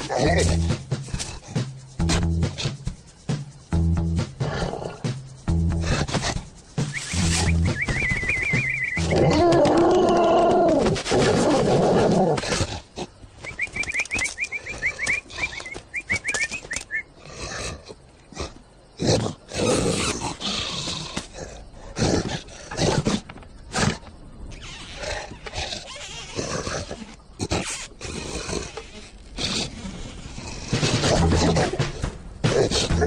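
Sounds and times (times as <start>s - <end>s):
high chirping calls: 6.8s - 9.2s, 13.4s - 17.2s.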